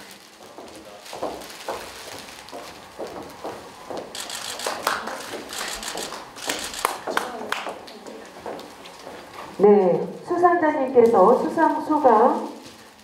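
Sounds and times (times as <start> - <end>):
rustling: 0.0 - 7.0
faint murmur of voices: 0.0 - 12.8.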